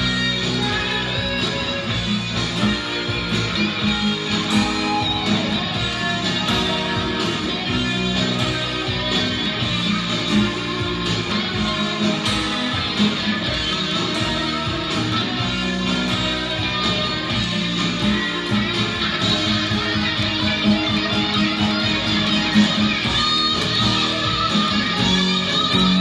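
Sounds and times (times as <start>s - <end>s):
guitar playing: 0.0s - 26.0s.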